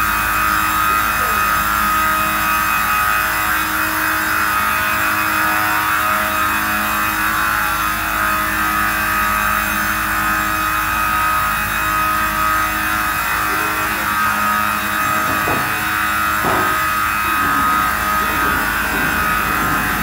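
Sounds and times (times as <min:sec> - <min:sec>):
woodworking saw whining: 0:00.0 - 0:20.0.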